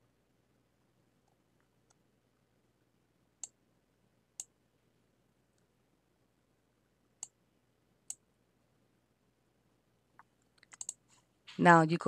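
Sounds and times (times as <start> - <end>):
computer mouse clicking: 10.2 - 11.2.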